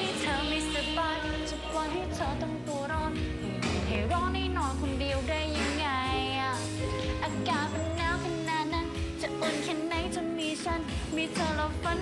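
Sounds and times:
pop backing music: 0.0s - 12.0s
woman singing into microphone: 0.0s - 12.0s.

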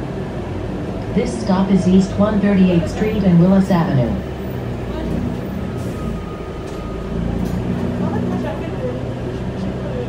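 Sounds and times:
bus engine drone: 0.0s - 10.0s.

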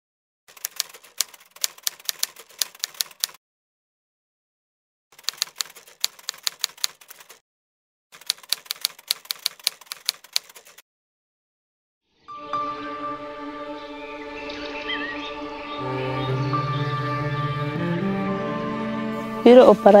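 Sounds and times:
typewriter keys clacking: 0.5s - 3.4s, 5.2s - 7.4s, 8.2s - 10.8s.

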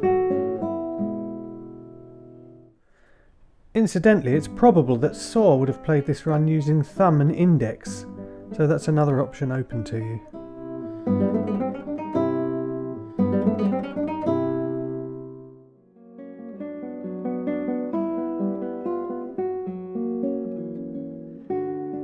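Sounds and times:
classical guitar fingerstyle: 0.0s - 2.8s, 3.4s - 22.0s.

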